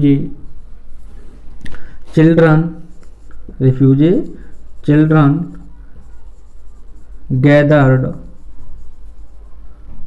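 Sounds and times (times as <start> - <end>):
low steady hum: 0.0 - 10.0
marker pen writing on whiteboard: 0.0 - 10.0.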